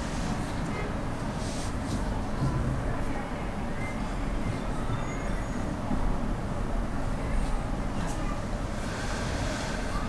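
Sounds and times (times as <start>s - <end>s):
faint high squeals: 4.8s - 5.7s.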